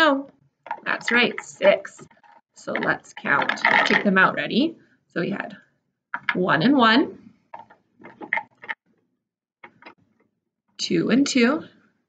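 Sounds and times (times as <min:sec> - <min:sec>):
plastic cubes clicking: 0:00.7 - 0:04.3, 0:06.2 - 0:06.5, 0:07.5 - 0:08.8.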